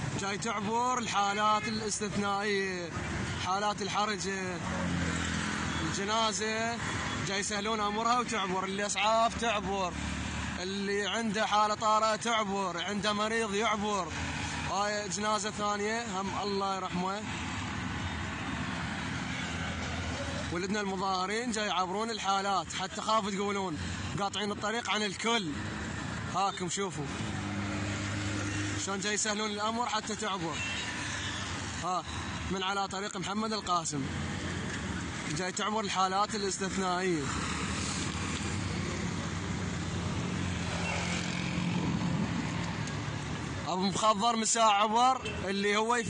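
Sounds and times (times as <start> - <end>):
highway road noise: 0.0 - 46.0.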